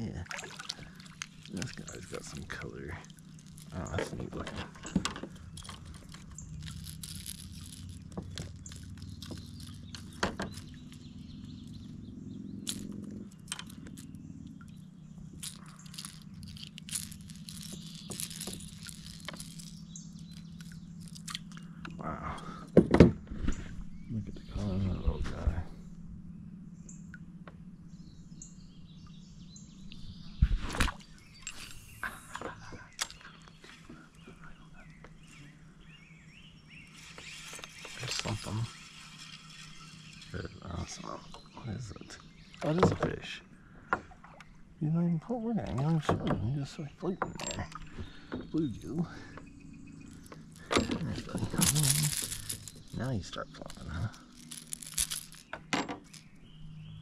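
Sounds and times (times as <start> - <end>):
birds chirping: 0.0 - 57.0
steady low hum: 0.0 - 57.0
handling noises: 0.5 - 11.1, 15.2 - 21.9, 47.2 - 56.4.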